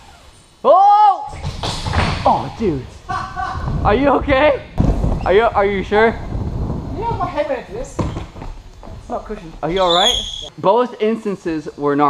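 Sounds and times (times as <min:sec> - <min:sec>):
man speaking indistinctly: 0:02.2 - 0:06.3, 0:07.0 - 0:08.2, 0:09.0 - 0:12.0.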